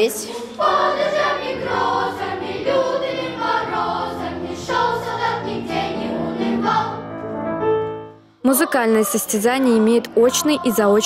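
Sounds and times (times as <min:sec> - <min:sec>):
children's choir singing: 0:00.0 - 0:07.1, 0:08.5 - 0:11.0.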